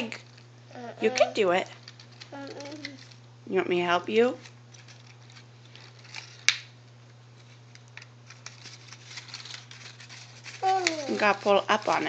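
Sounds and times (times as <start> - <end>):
paper rustling and crinkling: 0.0 - 3.2, 4.7 - 6.7, 7.3 - 12.0.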